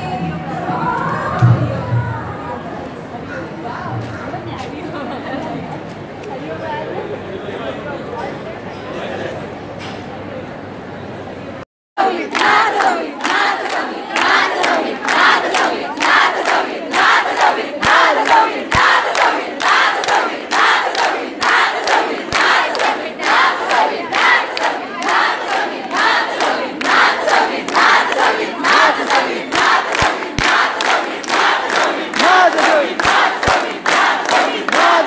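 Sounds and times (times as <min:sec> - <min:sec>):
crowd chanting and cheering: 0:12.0 - 0:35.0.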